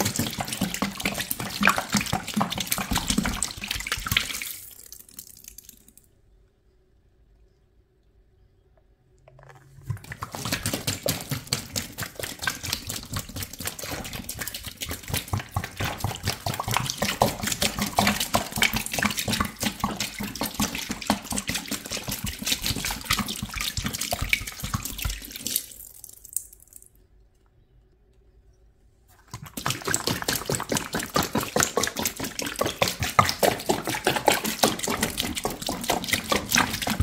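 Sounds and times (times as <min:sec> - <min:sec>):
liquid pouring into a basin: 0:00.0 - 0:06.1, 0:09.8 - 0:26.9, 0:29.2 - 0:37.0.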